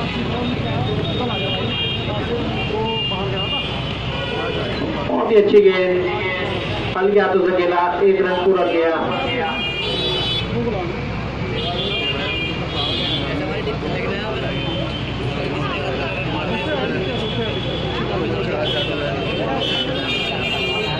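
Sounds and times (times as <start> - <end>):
crowd chattering: 0.0 - 20.9.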